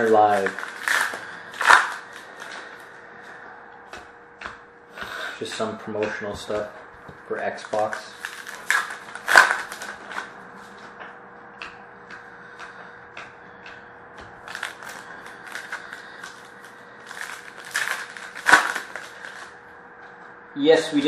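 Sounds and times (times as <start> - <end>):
card pack wrappers crinkling: 0.0 - 2.8, 7.7 - 10.3, 14.4 - 19.6.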